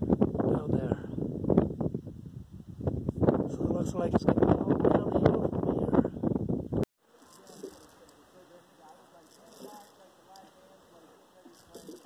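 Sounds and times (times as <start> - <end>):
wind buffeting microphone: 0.0 - 6.9.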